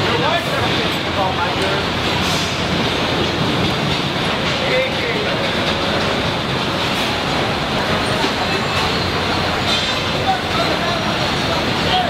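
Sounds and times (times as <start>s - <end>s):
loud machinery din: 0.0s - 12.0s
faint voices: 7.4s - 12.0s.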